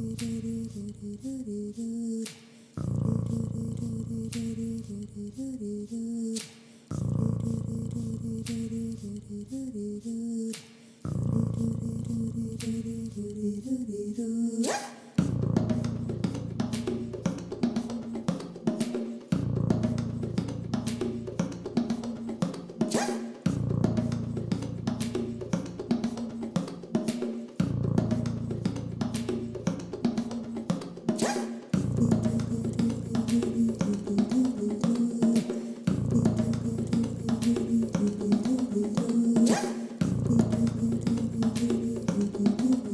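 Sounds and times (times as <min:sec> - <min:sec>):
percussive clicking beat: 0:00.0 - 0:01.0, 0:02.2 - 0:05.0, 0:08.3 - 0:09.2, 0:11.6 - 0:13.2, 0:14.6 - 0:42.9.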